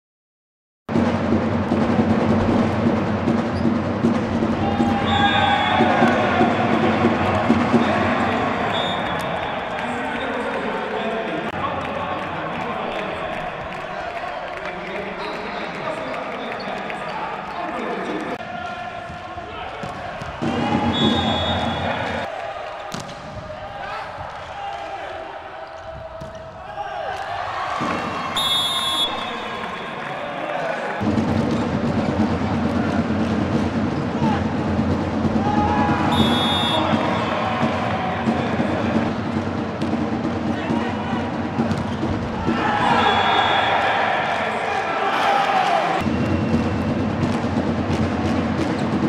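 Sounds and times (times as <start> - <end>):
crowd noise: 0.9 - 49.0
players shouting: 4.4 - 15.8, 18.1 - 31.0, 34.1 - 34.7, 35.3 - 39.2, 40.4 - 46.1
referee whistle blasts: 4.8 - 6.1, 8.7 - 9.3, 20.9 - 22.2, 28.4 - 29.7, 36.1 - 37.2, 42.9 - 44.0.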